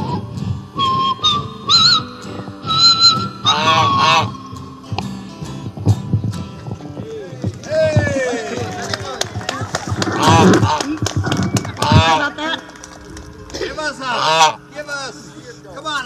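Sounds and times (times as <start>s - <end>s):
goose honking: 3.4s - 4.4s, 10.2s - 10.9s, 11.8s - 12.6s, 14.0s - 14.8s.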